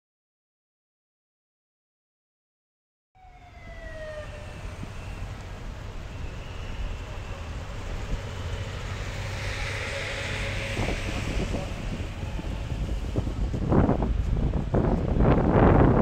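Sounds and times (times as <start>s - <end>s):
short falling siren tone: 3.2s - 12.8s
traffic rumble: 3.2s - 16.0s
wind buffeting microphone: 3.2s - 16.0s.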